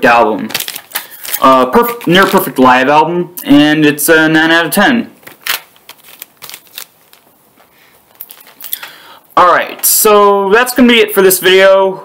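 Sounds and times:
cardboard sleeve clicks and rustles: 0:00.4 - 0:02.4, 0:05.2 - 0:09.0.

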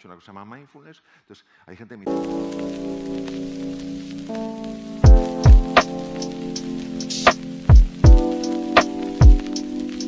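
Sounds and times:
held synth chords: 0:02.1 - 0:10.0
deep kick drum: 0:05.0 - 0:05.7, 0:07.7 - 0:08.3, 0:09.2 - 0:09.5
light percussion: 0:05.0 - 0:10.0.

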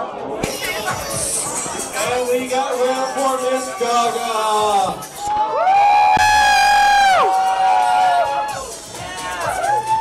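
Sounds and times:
nightclub music: 0:00.0 - 0:10.0.

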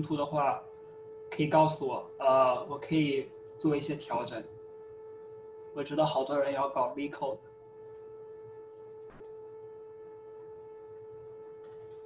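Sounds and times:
steady electronic tone: 0:00.0 - 0:12.0
brief click: 0:09.0 - 0:09.4.

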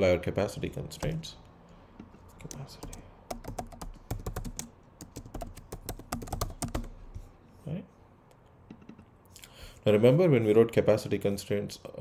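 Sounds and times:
computer keyboard typing: 0:01.0 - 0:01.2, 0:02.4 - 0:07.0.

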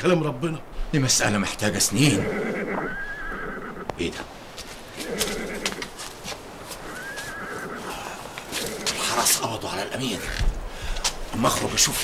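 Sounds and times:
horse whinnying: 0:02.0 - 0:03.9, 0:05.0 - 0:05.9, 0:06.8 - 0:09.1.

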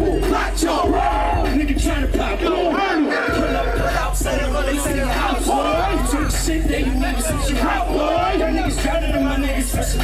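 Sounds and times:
crowd shouting: 0:00.0 - 0:09.5
hip hop music with deep bass: 0:00.0 - 0:10.0.

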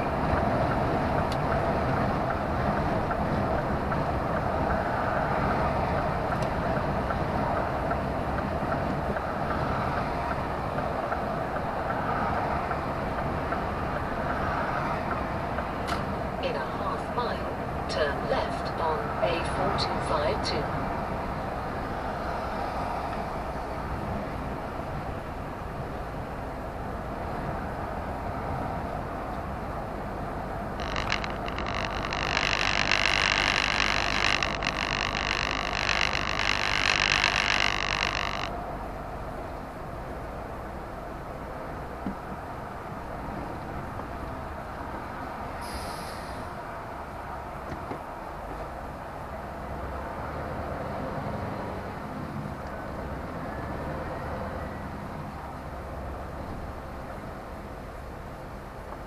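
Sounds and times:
lorry engine and road noise: 0:00.0 - 0:59.0
short squeaks and clicks: 0:30.8 - 0:38.6.

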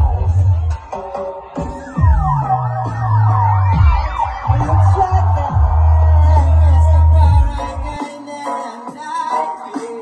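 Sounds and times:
dub reggae with heavy bassline: 0:00.0 - 0:10.0
swooping siren effect: 0:01.6 - 0:07.8.

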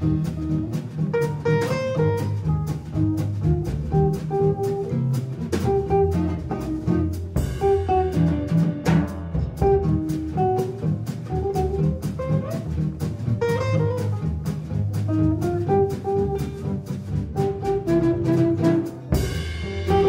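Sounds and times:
double bass: 0:00.0 - 0:20.0
drum kit: 0:00.0 - 0:20.0.

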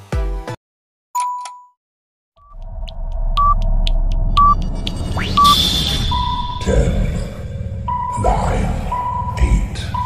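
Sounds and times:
rising swoosh: 0:02.4 - 0:08.1
steady low rumble: 0:02.4 - 0:10.0
short beeps: 0:03.3 - 0:03.6, 0:04.3 - 0:06.8.

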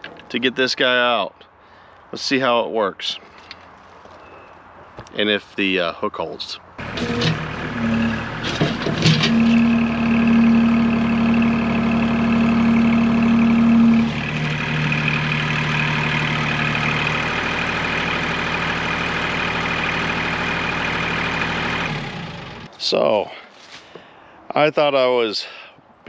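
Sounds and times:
diesel tractor engine under load: 0:06.8 - 0:22.7.

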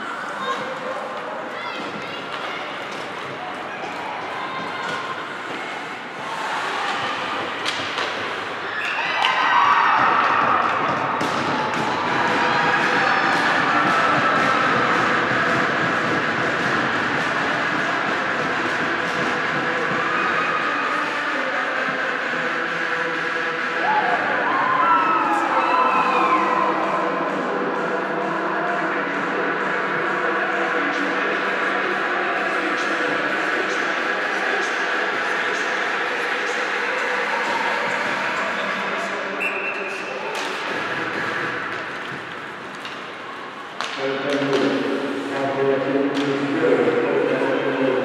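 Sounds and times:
echoing rink noise: 0:00.0 - 0:48.0
hockey sticks and puck clacking: 0:06.5 - 0:20.3, 0:40.0 - 0:45.4, 0:46.1 - 0:46.5
voices shouting: 0:23.7 - 0:27.4.

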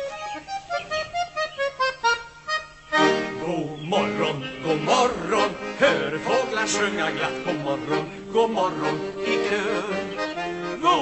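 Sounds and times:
button accordion playing: 0:00.0 - 0:11.0.

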